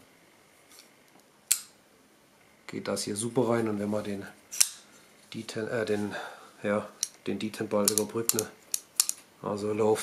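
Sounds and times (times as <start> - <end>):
folding knife click shut: 7.9 - 9.2.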